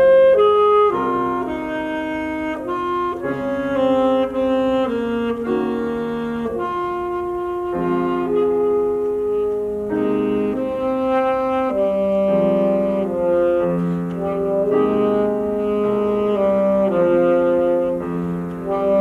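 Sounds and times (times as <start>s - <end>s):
saxophone playing slow melody: 0.0s - 19.0s.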